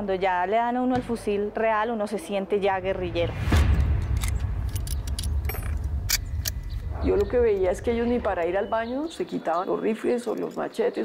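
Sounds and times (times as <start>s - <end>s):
low rumble: 2.6s - 9.3s
metallic clicks of rifles: 4.0s - 6.8s.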